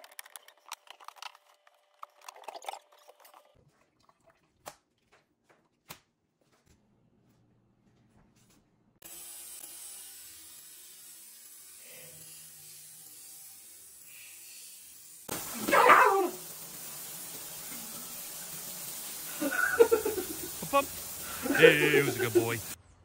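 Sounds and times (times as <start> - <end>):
shower running: 11.7 - 22.8
faucet running into steel sink: 15.3 - 22.8
animal-like cries: 15.5 - 16.4.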